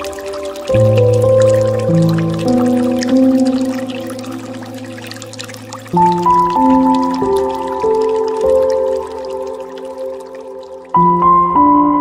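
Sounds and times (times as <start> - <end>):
water fountain trickling: 0.0 - 11.6
soft piano chords: 0.0 - 12.0.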